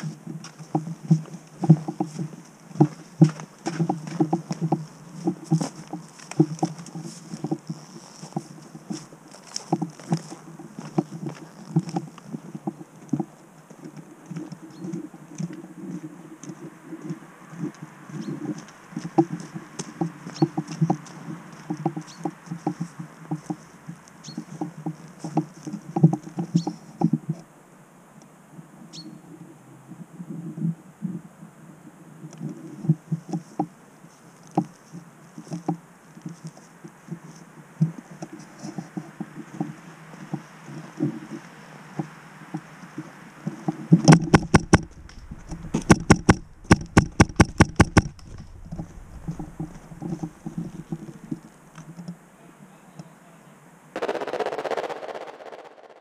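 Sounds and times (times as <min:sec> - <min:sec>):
footsteps through grass and leaves: 0:00.0 - 0:13.9
small knocks and clicks: 0:00.0 - 0:15.6, 0:18.5 - 0:27.4, 0:43.5 - 0:52.2
loud sharp knocks: 0:44.1 - 0:51.0.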